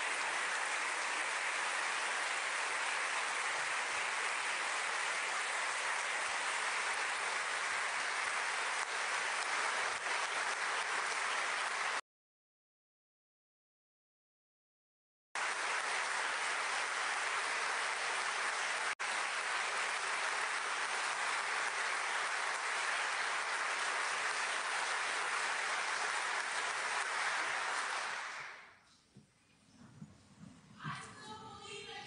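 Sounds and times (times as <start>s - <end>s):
large audience applauding: 0.0s - 12.0s, 15.4s - 28.8s.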